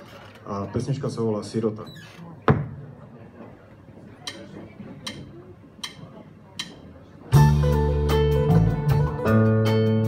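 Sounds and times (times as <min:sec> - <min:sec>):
count-in clicks: 0:04.2 - 0:06.8.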